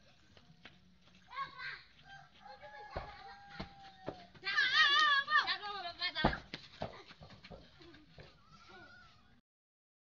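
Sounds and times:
faint children's voices: 0.0s - 9.4s
football kicked with a thump: 2.9s - 4.2s, 6.2s - 7.6s.

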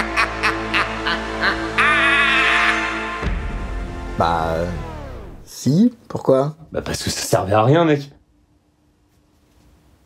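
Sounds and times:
man laughing in rapid bursts: 0.0s - 3.0s
wavering vocal sound: 0.0s - 3.2s.

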